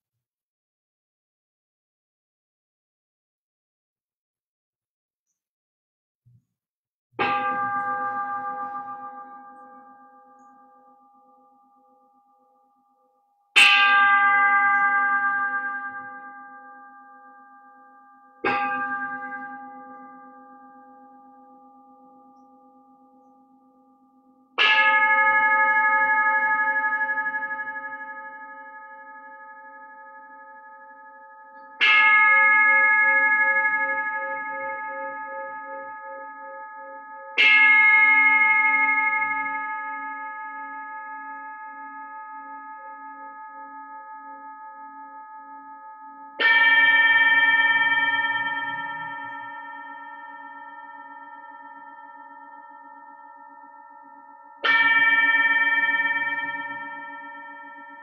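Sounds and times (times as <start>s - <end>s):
metal singing bowls ringing: 45.5s - 58.0s.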